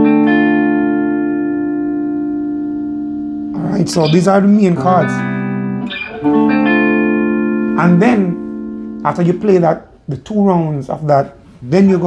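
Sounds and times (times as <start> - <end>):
electric guitar chord ringing: 0.0 - 9.1.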